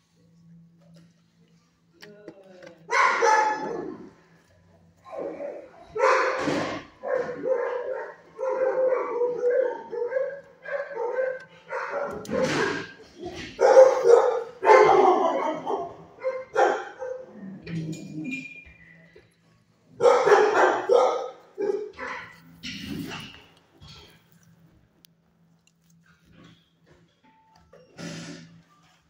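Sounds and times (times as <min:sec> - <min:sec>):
dog barking: 0:02.9 - 0:04.1, 0:05.1 - 0:17.3, 0:20.0 - 0:22.4.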